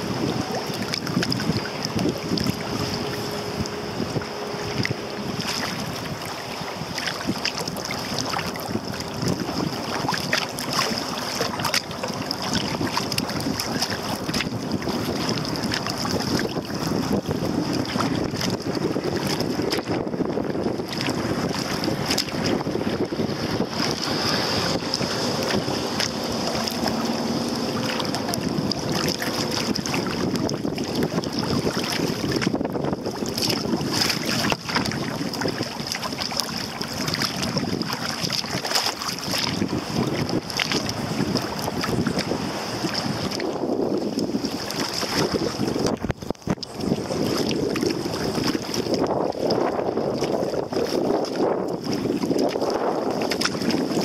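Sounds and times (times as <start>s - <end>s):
paddle strokes splashing: 0.0s - 54.0s
water lapping against hull: 0.0s - 54.0s
wind buffeting microphone: 0.0s - 54.0s.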